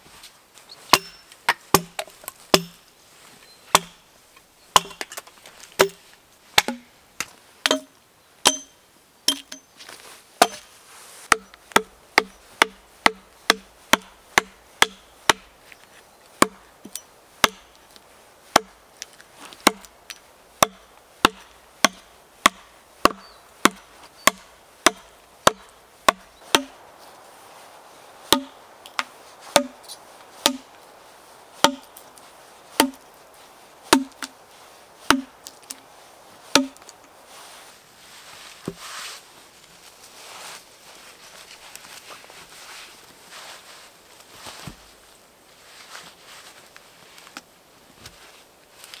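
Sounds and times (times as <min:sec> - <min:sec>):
hatchet chopping log: 0:00.9 - 0:02.8, 0:03.7 - 0:04.0, 0:04.8 - 0:05.2, 0:05.8 - 0:06.0, 0:06.6 - 0:06.9, 0:07.6 - 0:09.6, 0:10.4 - 0:10.7, 0:11.3 - 0:15.5, 0:16.4 - 0:17.8, 0:18.5 - 0:18.8, 0:19.6 - 0:26.9, 0:28.3 - 0:29.8, 0:30.4 - 0:30.7, 0:31.6 - 0:32.0, 0:32.8 - 0:33.0, 0:33.9 - 0:34.4, 0:35.0 - 0:35.8, 0:36.5 - 0:37.0.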